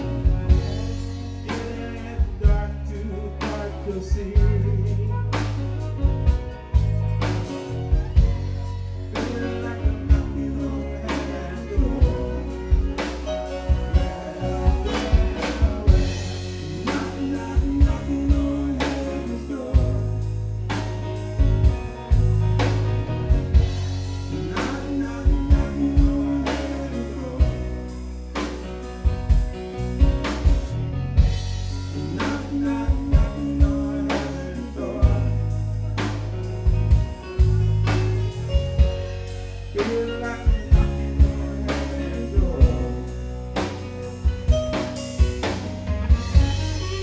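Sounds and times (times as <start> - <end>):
live band playing: 0.0 - 47.0
man singing: 0.0 - 47.0.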